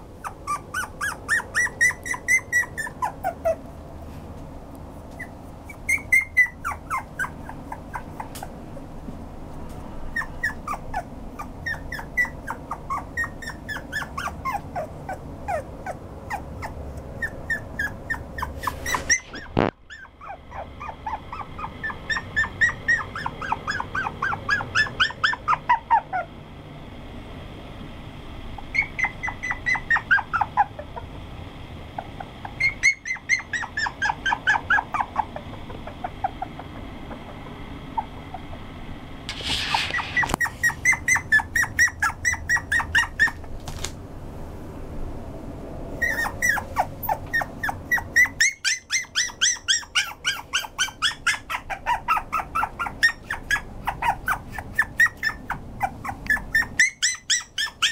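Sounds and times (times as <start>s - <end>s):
puppy whimpering: 0.2s - 3.7s, 5.1s - 8.9s, 10.1s - 26.4s, 28.6s - 31.1s, 32.0s - 38.7s, 39.3s - 43.5s, 46.0s - 57.9s.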